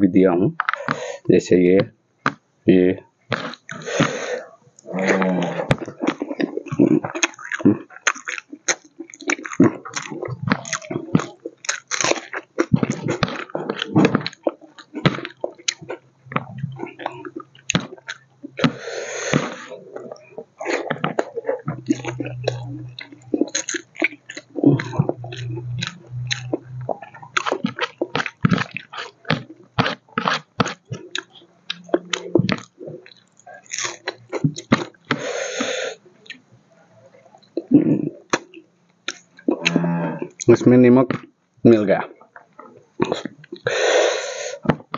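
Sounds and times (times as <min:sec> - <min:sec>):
chewing and crunching food: 0:00.6 - 0:01.2, 0:03.3 - 0:44.9.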